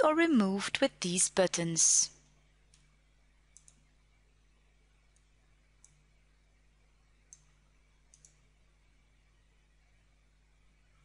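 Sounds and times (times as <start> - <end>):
computer mouse clicks: 3.5 - 3.9, 5.1 - 6.0, 7.3 - 8.5.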